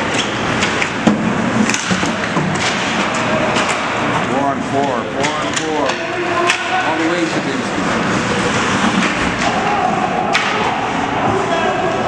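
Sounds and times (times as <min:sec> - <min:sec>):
puck knocking against boards: 0:00.6 - 0:03.9
skates and sticks on ice: 0:05.2 - 0:11.4.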